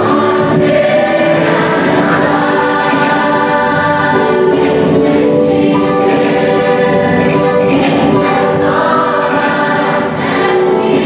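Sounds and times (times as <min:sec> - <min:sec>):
choir singing held chords: 0:00.0 - 0:11.0.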